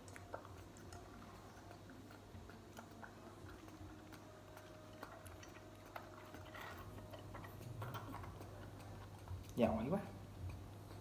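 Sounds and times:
baby monkey sucking bottle teat: 0.0s - 11.0s.

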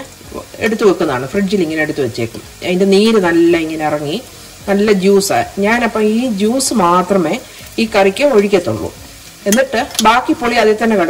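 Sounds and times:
faint steady hiss: 0.0s - 11.0s
woman speaking: 9.5s - 11.0s.

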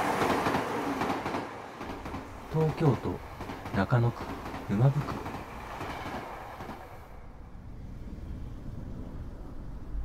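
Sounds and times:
train running past: 0.0s - 10.0s
low rumble: 7.2s - 10.0s.

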